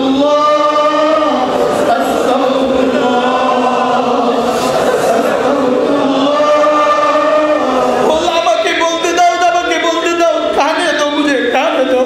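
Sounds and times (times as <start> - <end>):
man chanting through microphones: 0.0 - 4.5, 5.2 - 12.0.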